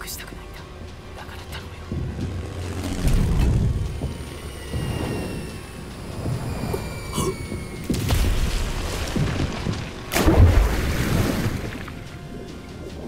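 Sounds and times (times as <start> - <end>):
heavy low rumbling: 0.0 - 13.0
falling bomb whistle: 3.7 - 9.0.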